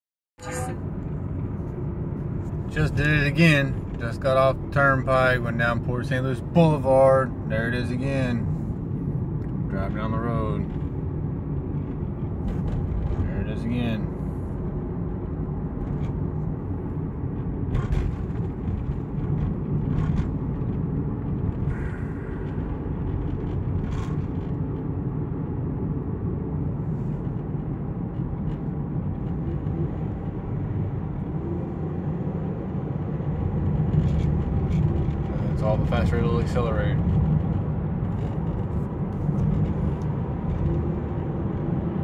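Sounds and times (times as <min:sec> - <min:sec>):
car engine and road rumble: 0:00.4 - 0:42.0.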